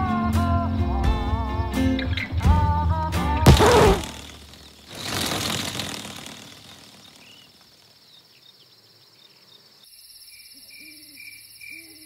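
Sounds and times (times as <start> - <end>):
loud burst of noise: 3.5 - 7.4
crickets chirping: 3.6 - 12.0.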